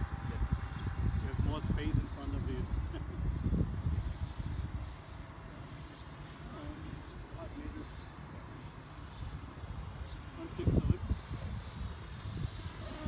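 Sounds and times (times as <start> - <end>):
model jet high whine: 0.0 - 13.0.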